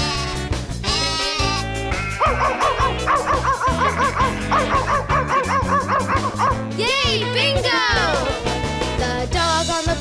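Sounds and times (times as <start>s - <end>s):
bouncy children's music: 0.0s - 10.0s
cartoon puppy yipping: 0.9s - 8.1s.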